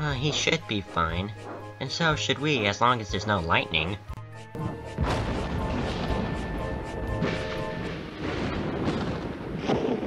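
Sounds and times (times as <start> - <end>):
music: 0.0 - 8.9
steady storm noise: 5.0 - 10.0
thunder crashing and rumbling: 5.0 - 10.0.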